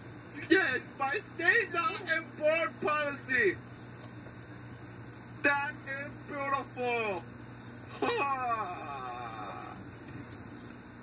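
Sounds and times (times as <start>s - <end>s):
person whining cry: 7.9s - 9.8s.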